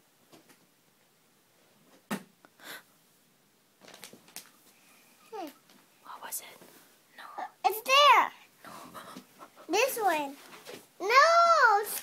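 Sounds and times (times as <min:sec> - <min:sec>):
child whispering: 0:05.2 - 0:10.1
child calling out: 0:11.0 - 0:12.0.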